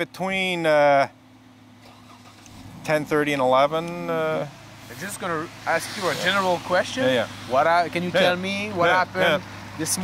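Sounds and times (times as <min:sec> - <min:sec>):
car engine humming: 0:00.0 - 0:10.0
man speaking: 0:02.9 - 0:10.0.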